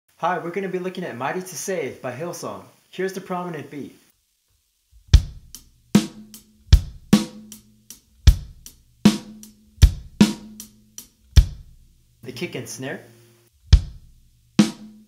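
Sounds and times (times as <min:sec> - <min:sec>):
bass drum: 0:05.0 - 0:12.1, 0:13.6 - 0:15.0.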